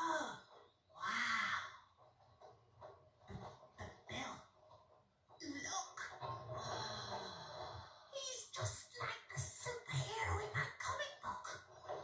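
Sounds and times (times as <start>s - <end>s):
voice-like call from television: 0.0s - 12.0s.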